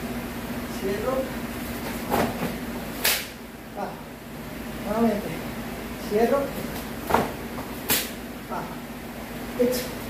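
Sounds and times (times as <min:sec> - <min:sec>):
sharp swish of a strike: 0:03.0 - 0:03.3.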